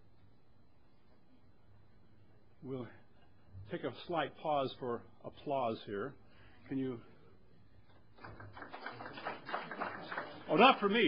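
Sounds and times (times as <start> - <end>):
audience applauding: 8.2 - 11.0.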